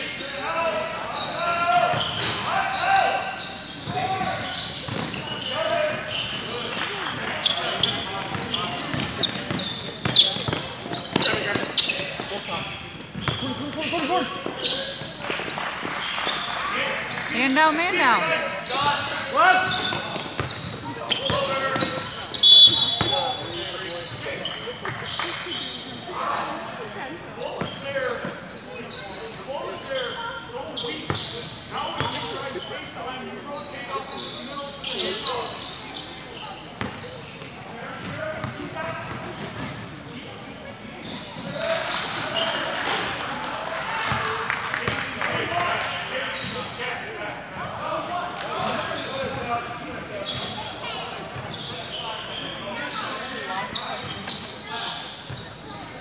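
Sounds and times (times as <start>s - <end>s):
players and spectators calling out: 0.0s - 44.3s
referee's whistle: 22.3s - 23.4s.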